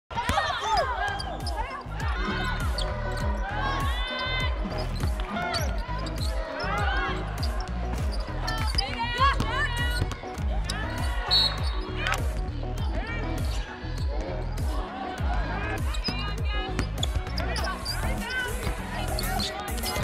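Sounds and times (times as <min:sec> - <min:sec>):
sneakers squeaking on court: 0:00.2 - 0:03.4, 0:04.1 - 0:12.5, 0:15.8 - 0:20.0
background music with bass line: 0:00.9 - 0:20.0
basketball bouncing: 0:06.7 - 0:10.7, 0:15.9 - 0:18.8.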